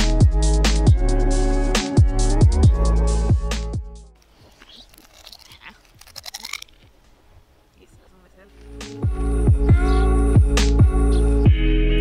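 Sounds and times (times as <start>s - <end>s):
person chewing crunchy food: 4.4s - 7.0s.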